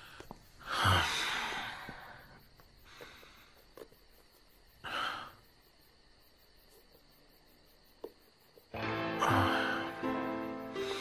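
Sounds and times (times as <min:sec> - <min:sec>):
soft breath: 0:00.0 - 0:03.9.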